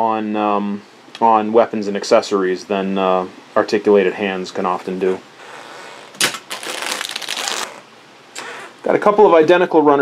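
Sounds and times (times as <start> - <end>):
plastic bag crinkling: 6.2 - 7.8.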